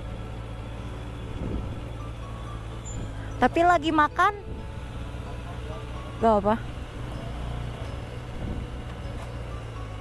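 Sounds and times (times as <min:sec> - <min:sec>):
motorcycle engine running low: 0:00.0 - 0:10.0.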